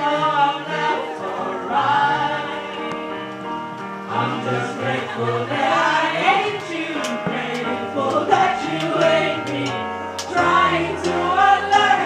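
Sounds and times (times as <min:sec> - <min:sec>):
voices singing together: 0:00.0 - 0:12.0.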